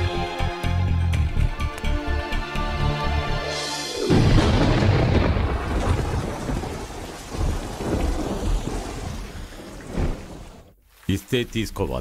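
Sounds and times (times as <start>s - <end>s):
heavy rain pouring: 3.9s - 12.0s
thunder rumbling: 4.0s - 10.8s.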